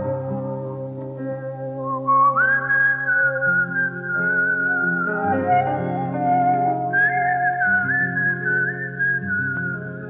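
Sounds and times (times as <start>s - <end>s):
whistle-like lead melody: 1.8s - 10.0s.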